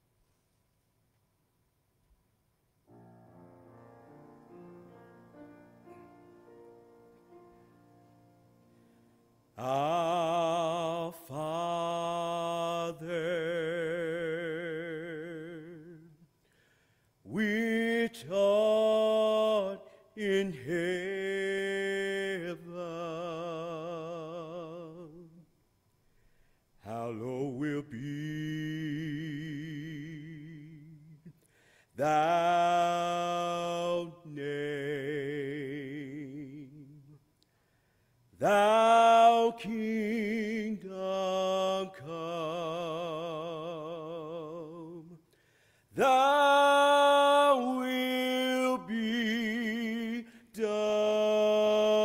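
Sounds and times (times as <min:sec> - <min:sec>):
breath: 0:08.7 - 0:09.2, 0:16.4 - 0:17.2, 0:26.0 - 0:26.8, 0:31.4 - 0:32.0, 0:37.4 - 0:38.3, 0:45.2 - 0:45.9
man singing long note: 0:09.6 - 0:16.2
man singing unaccompanied: 0:09.6 - 0:16.2, 0:17.3 - 0:25.5, 0:26.8 - 0:31.3, 0:32.0 - 0:37.2, 0:38.4 - 0:45.2, 0:46.0 - 0:52.0.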